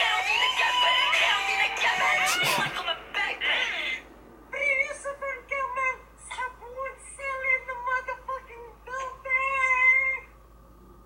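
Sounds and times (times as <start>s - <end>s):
person rapping: 1.2s - 2.9s
high wavering drawn-out voice: 1.7s - 4.0s.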